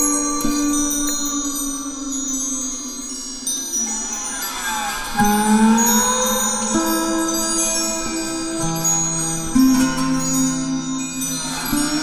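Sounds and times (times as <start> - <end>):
relaxation music: 0.0 - 12.0
wind chimes ringing: 0.0 - 12.0.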